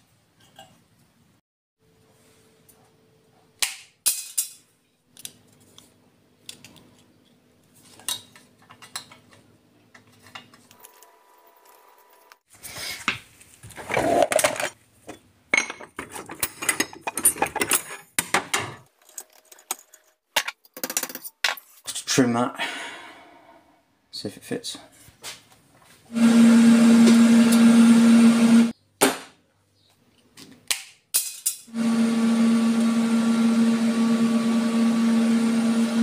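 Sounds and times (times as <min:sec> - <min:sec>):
metal tools clattering: 0:13.9 - 0:21.8.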